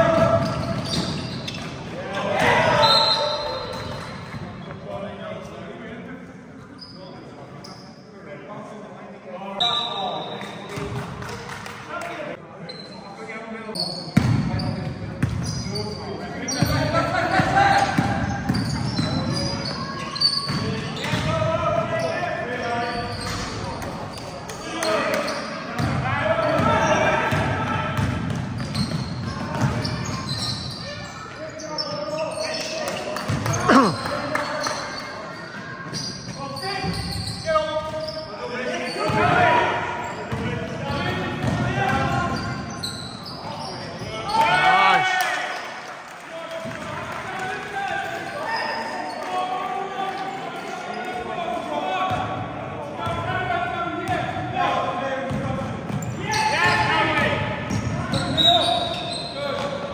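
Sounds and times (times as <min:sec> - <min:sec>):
players calling out: 0:33.4 - 0:34.8.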